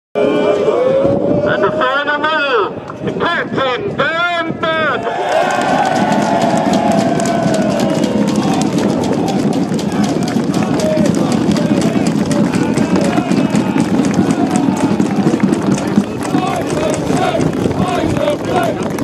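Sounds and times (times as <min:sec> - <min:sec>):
crowd talking and calling out: 0:00.2 - 0:19.0.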